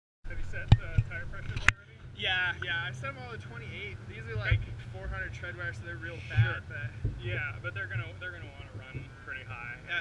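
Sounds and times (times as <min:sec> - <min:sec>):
voices talking: 0:00.3 - 0:10.0.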